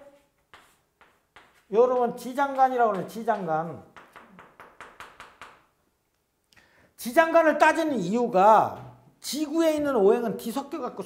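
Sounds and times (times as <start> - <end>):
chalk tapping on blackboard: 0.0 - 5.7.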